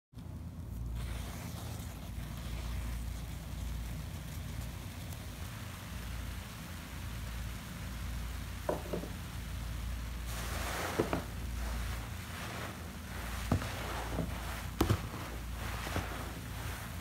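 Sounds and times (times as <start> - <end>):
low steady rumble: 0.2 - 17.0
soap foam fizzing: 0.7 - 17.0.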